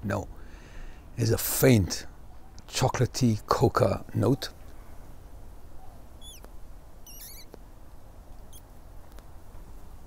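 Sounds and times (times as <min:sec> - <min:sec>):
faint background noise: 0:00.0 - 0:10.0
small bird chirping: 0:05.7 - 0:07.6, 0:08.4 - 0:09.2.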